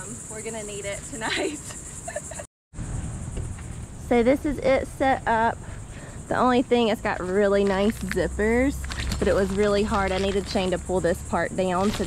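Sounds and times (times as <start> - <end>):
high-pitched insect chorus: 0.0 - 12.0.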